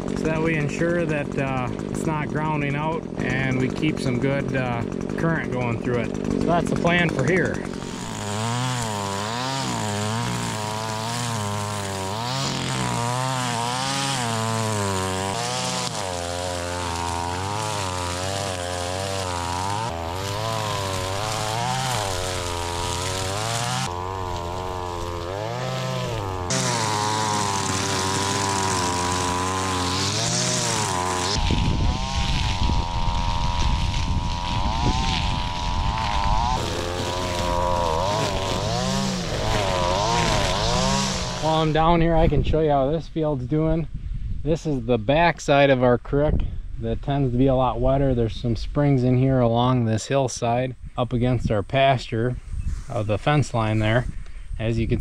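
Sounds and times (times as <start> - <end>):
string trimmer engine revving: 0.0 - 42.4.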